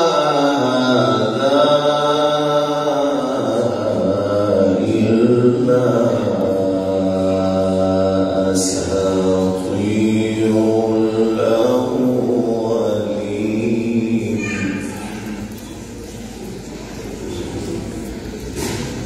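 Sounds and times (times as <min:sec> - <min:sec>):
man reciting melodically: 0:00.0 - 0:15.0.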